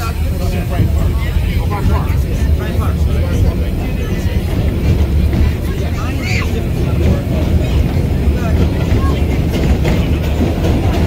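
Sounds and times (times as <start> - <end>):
subway train wheels rumbling: 0.0 - 11.0.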